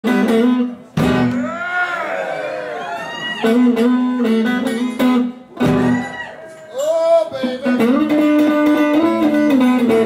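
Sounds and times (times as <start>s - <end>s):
amplified acoustic guitar: 3.4s - 10.0s.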